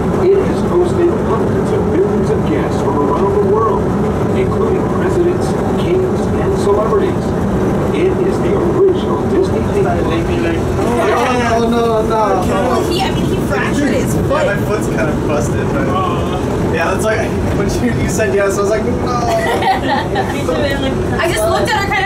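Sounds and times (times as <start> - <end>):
monorail train running: 0.0 - 22.0
voices: 0.0 - 22.0.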